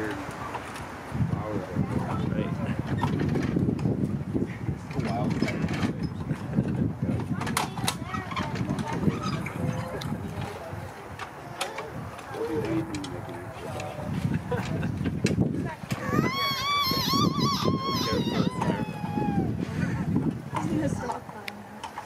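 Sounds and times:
muffled voices talking: 4.5 - 14.7.

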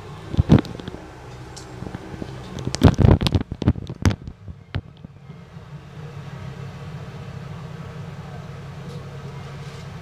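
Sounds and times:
bus running hum: 0.0 - 10.0
sharp knocks and rattles: 0.3 - 5.1.

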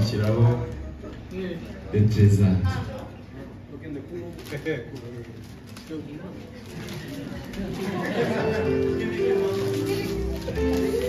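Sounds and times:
indistinct voices murmuring: 6.9 - 11.0.

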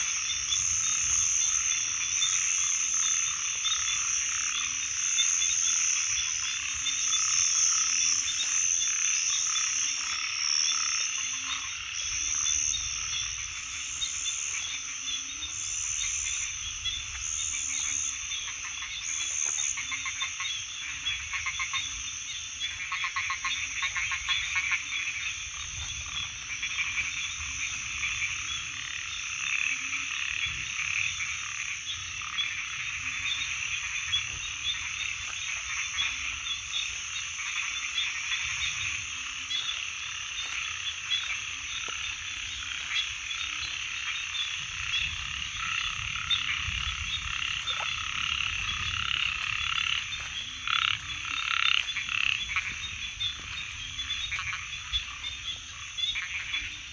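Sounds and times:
chorus of frogs calling: 0.0 - 56.9
louder close frog calls: 0.0 - 56.9.

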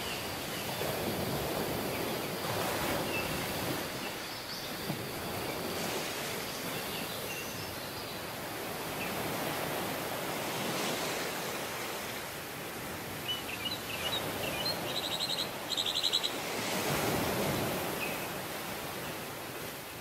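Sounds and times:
waves breaking on a beach: 0.0 - 20.0.

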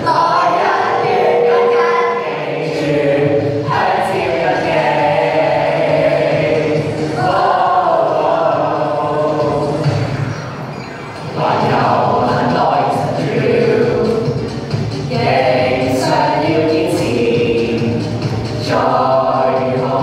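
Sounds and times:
teenage choir singing: 0.0 - 20.0.

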